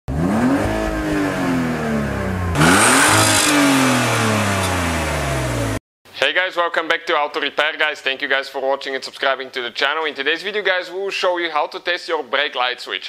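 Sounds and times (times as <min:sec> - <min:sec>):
car engine revving: 0:00.1 - 0:05.8.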